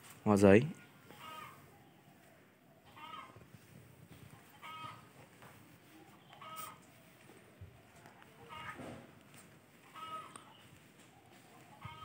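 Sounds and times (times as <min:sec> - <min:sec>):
faint bird calls: 0:00.8 - 0:03.7, 0:04.4 - 0:09.2, 0:09.8 - 0:12.0.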